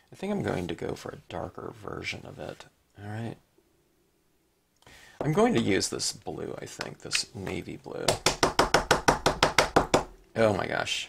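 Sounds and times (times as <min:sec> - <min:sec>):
ink pad tapping on rubber stamp: 0:08.1 - 0:10.2.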